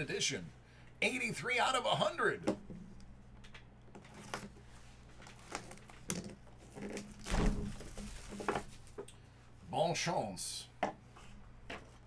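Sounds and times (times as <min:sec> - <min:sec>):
plastic shrink-wrap being peeled: 0:05.2 - 0:09.0.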